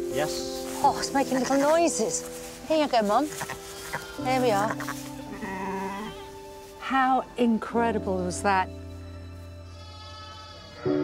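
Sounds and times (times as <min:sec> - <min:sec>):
soft background music chords: 0:00.0 - 0:11.0.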